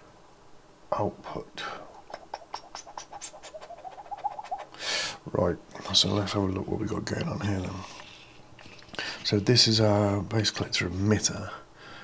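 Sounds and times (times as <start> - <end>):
faint wavering pitched sound: 1.9 - 4.7.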